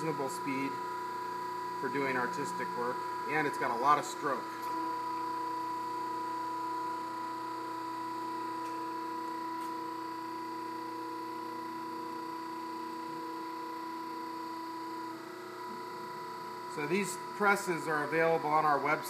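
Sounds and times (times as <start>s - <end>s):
hydraulic press motor humming: 0.0s - 19.0s.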